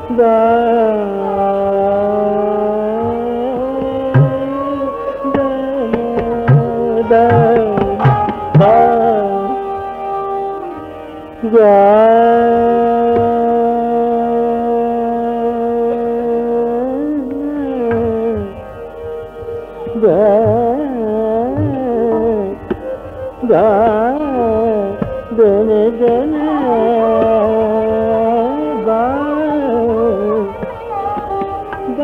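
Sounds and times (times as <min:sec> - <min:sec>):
man singing a long note: 0:00.0 - 0:18.6, 0:19.9 - 0:22.8, 0:23.4 - 0:32.0.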